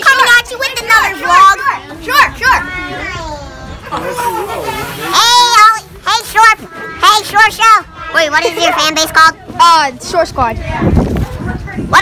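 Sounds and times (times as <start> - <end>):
boys yelling and shrieking: 0.0 - 10.1.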